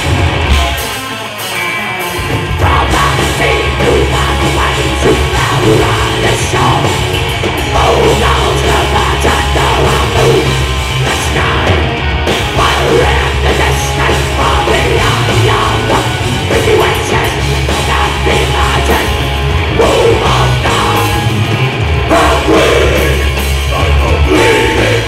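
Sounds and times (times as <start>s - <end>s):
metal band playing: 0.0s - 25.0s
harsh vocals: 2.2s - 25.0s.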